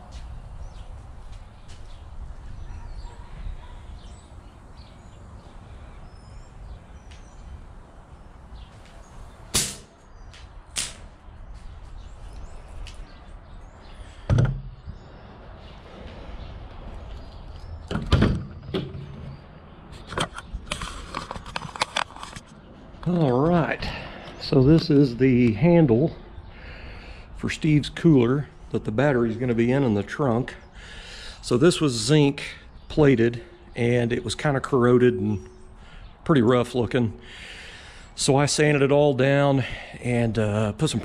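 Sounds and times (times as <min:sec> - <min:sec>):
sharp knocks and clunks: 0:14.2 - 0:14.8, 0:17.9 - 0:19.4
clicks and rattles: 0:20.0 - 0:22.5.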